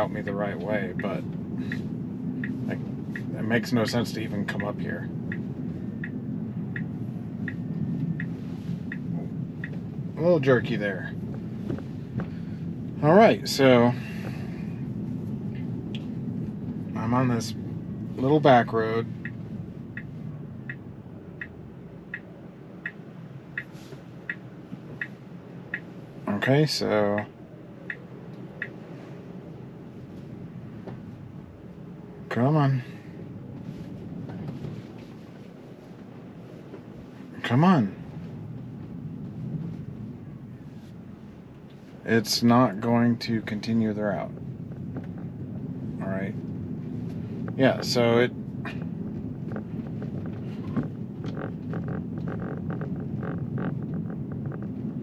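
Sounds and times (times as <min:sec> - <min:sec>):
road and wind noise: 0:00.0 - 0:55.0.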